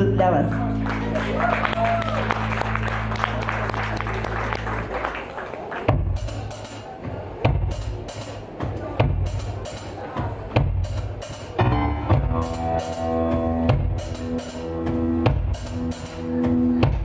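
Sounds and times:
audience clapping: 0:00.5 - 0:06.9
bass drum hits: 0:11.6 - 0:15.9.

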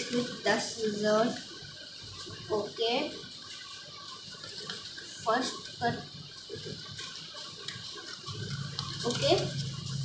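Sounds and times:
scissors cutting paper: 0:06.6 - 0:10.0.

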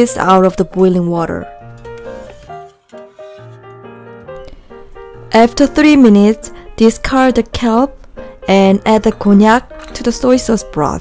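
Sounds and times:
light instrumental melody: 0:00.0 - 0:11.0.

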